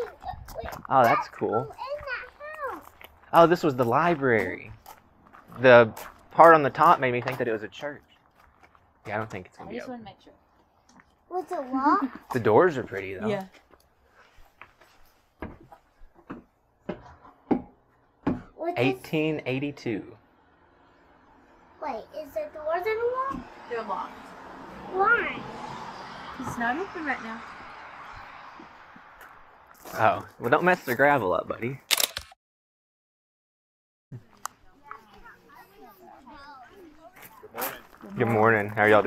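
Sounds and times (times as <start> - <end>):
footsteps on wooden boards: 13.6 - 18.5.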